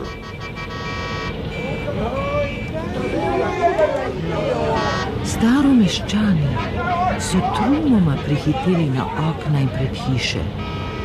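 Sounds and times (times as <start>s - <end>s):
car horn: 0.0s - 5.6s, 6.2s - 8.8s, 10.6s - 11.0s
traffic rumble: 0.0s - 11.0s
people shouting: 1.9s - 10.2s.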